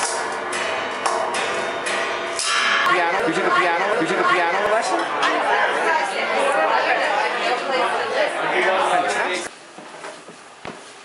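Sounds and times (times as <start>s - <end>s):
hubbub of overlapping conversation: 2.7s - 9.5s.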